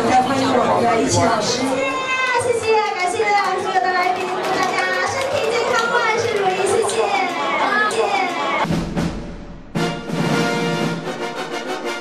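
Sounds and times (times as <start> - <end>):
crowd of diners chattering: 0.0 - 8.6.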